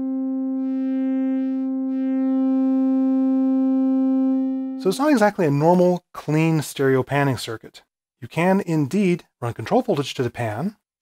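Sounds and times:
sustained synthesizer note: 0:00.0 - 0:05.0.

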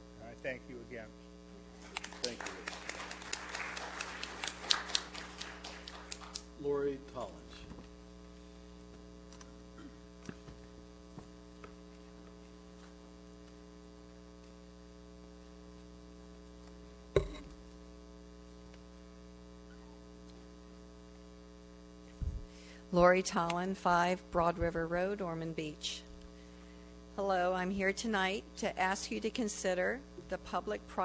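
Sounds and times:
electrical mains hum: 0:00.0 - 0:31.0.

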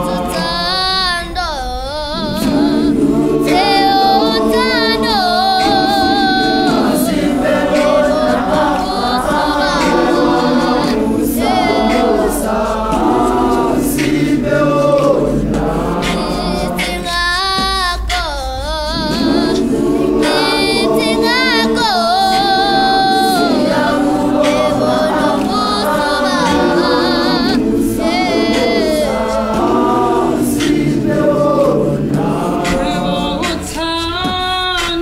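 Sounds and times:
gospel choir singing a cappella: 0:00.0 - 0:35.0
lead voice singing with vibrato: 0:00.0 - 0:35.0.

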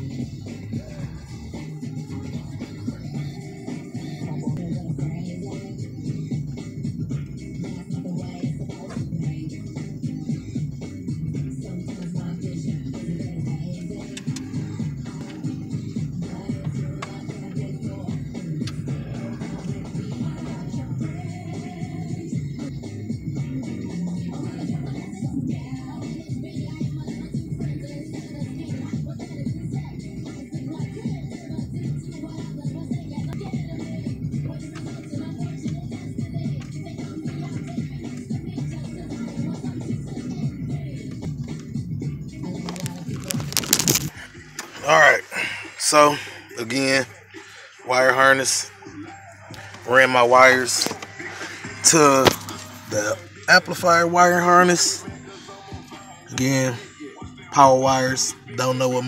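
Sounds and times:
hip-hop music with heavy bass: 0:00.0 - 0:59.0.

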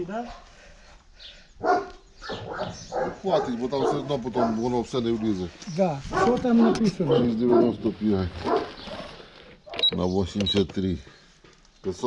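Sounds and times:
dog barking: 0:01.6 - 0:04.7, 0:06.1 - 0:09.9.

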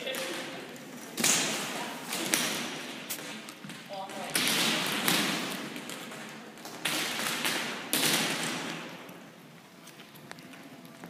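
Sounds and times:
sharp echoing impacts: 0:00.0 - 0:09.3.

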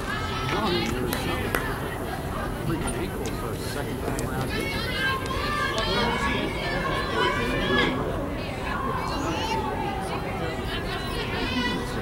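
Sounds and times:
indistinct chatter and calls: 0:00.0 - 0:12.0.

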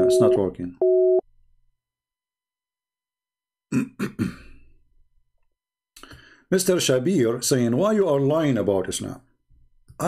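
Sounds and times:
two-pitch busy tone beep: 0:00.0 - 0:01.2.

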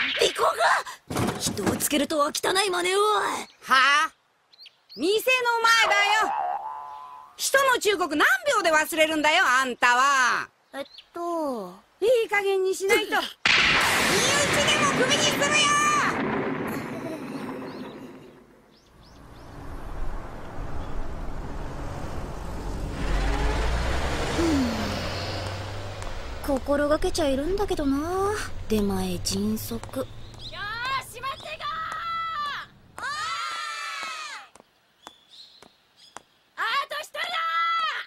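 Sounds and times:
wash of noise: 0:19.2 - 0:30.2.

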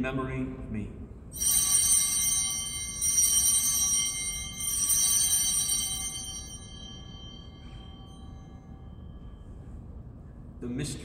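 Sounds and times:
altar bells ringing: 0:01.3 - 0:10.2.

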